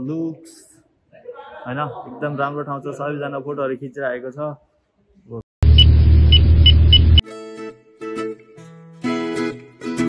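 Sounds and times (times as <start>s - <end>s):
short high beeps: 5.7s - 7.2s.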